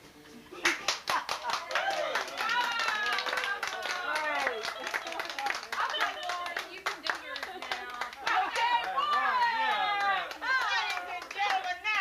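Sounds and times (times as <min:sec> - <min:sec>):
people talking: 0:00.5 - 0:12.0
people clapping: 0:00.6 - 0:12.0.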